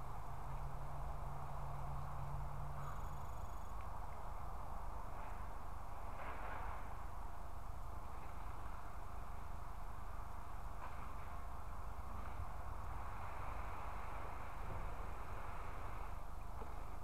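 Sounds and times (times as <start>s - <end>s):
outdoor background noise: 0.0s - 17.0s.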